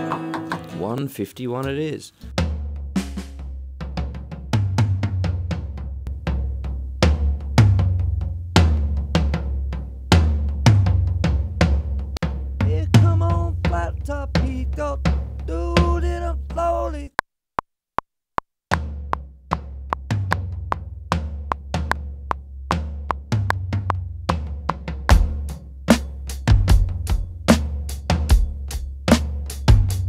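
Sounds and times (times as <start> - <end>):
sampled drum kit: 0.0 - 17.0, 18.7 - 30.0.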